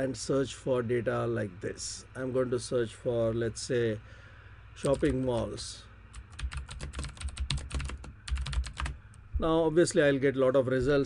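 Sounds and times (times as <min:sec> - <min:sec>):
computer keyboard typing: 0:04.8 - 0:05.5, 0:06.1 - 0:09.0.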